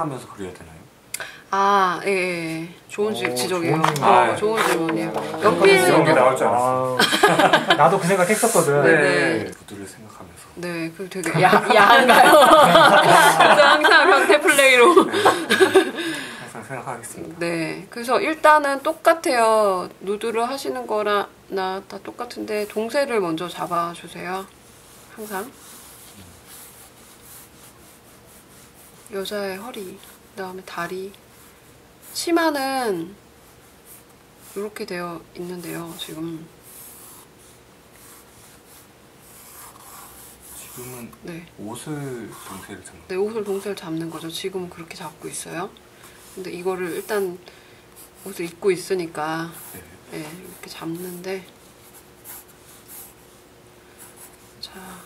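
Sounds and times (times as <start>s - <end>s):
pencil scratching on paper: 24.7s - 30.2s, 33.5s - 41.0s, 46.2s - 47.3s, 48.0s - 53.4s.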